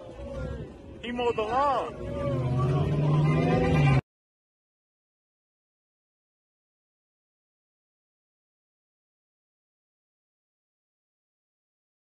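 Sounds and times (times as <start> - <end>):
car engine pulling away: 1.8 - 4.0.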